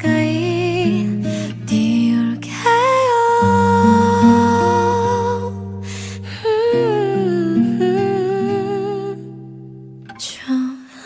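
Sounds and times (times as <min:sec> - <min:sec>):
woman singing softly: 0:00.0 - 0:09.6, 0:10.2 - 0:11.0.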